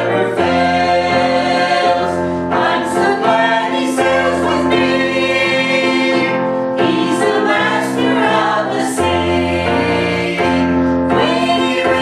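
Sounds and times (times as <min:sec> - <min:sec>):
electric piano: 0:00.0 - 0:12.0
vocal group singing in harmony: 0:00.0 - 0:12.0.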